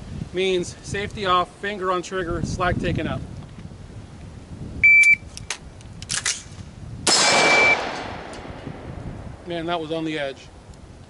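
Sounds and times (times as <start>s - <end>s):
shot timer beep: 4.8s - 5.2s, 7.5s - 7.8s
rifle shot: 7.1s - 8.8s.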